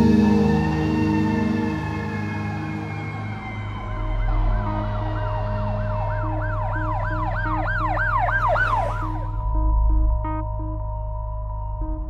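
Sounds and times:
siren yelping: 0:00.0 - 0:09.4
droning soundtrack: 0:00.0 - 0:12.0.

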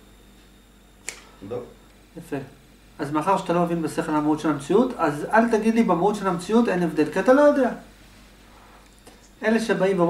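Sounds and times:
short sharp click: 0:01.0 - 0:01.3.

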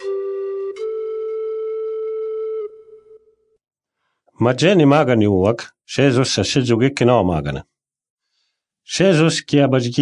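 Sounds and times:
flute holding long note: 0:00.0 - 0:03.4.

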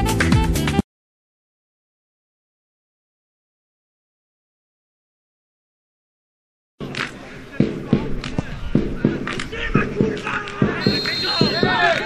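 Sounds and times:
players shouting: 0:06.8 - 0:12.0
high thin whistle: 0:10.8 - 0:11.8.

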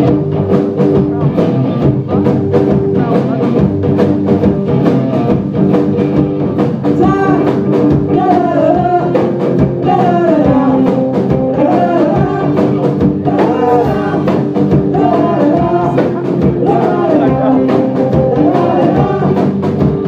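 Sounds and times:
drum kit beat: 0:00.0 - 0:20.0
electric guitar riff: 0:00.0 - 0:20.0.

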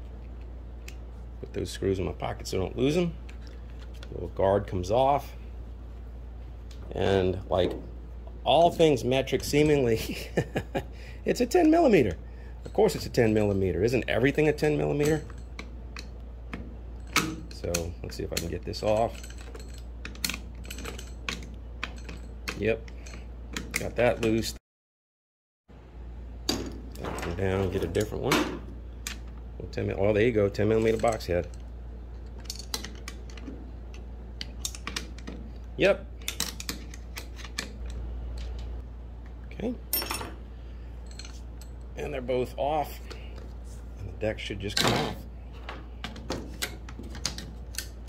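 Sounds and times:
steady low hum: 0:00.0 - 0:24.6, 0:25.7 - 0:48.0.

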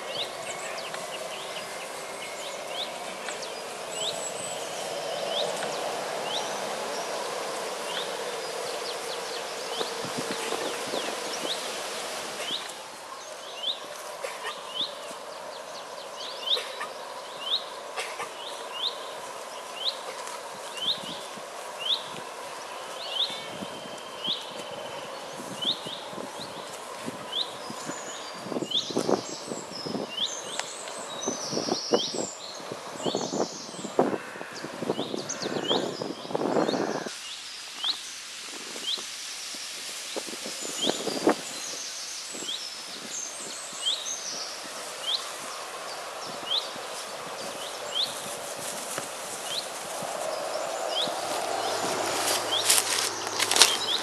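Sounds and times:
running water: 0:00.0 - 0:15.3
birds singing: 0:00.0 - 0:38.2, 0:38.8 - 0:54.0
rustling: 0:46.9 - 0:54.0
bird chirping: 0:49.4 - 0:54.0.

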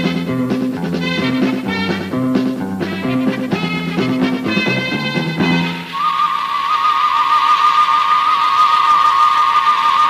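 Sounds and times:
wavering tone: 0:05.6 - 0:10.0.

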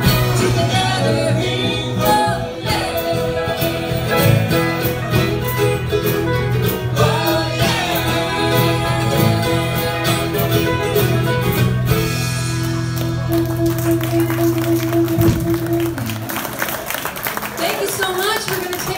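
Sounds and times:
person singing: 0:00.0 - 0:05.0, 0:06.8 - 0:10.9
drum kit: 0:00.0 - 0:16.7
acoustic guitar: 0:00.0 - 0:17.6.

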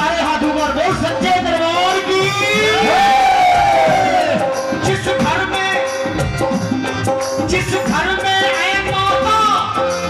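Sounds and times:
devotional music with harmonium and drums: 0:00.0 - 0:10.0
crowd cheering: 0:02.4 - 0:05.0.

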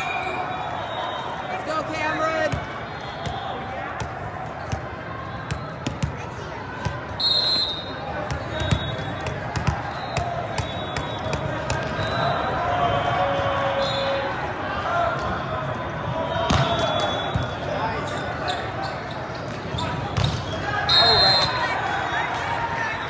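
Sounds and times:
voices of players and spectators: 0:00.0 - 0:23.0.

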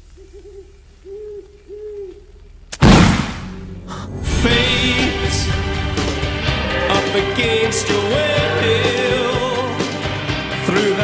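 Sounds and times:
owl hooting: 0:00.0 - 0:02.7.

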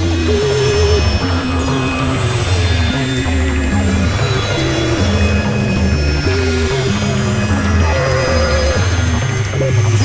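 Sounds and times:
droning synth line: 0:00.0 - 0:10.0.

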